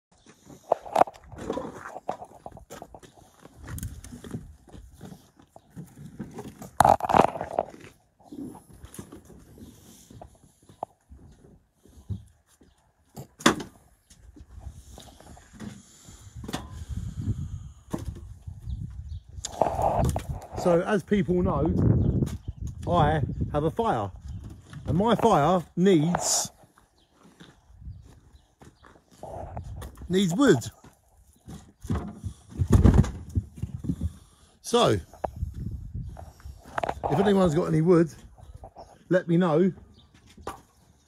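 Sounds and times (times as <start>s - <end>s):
logs knocking and rustling: 0.3s - 12.3s, 17.9s - 20.6s, 31.4s - 34.3s.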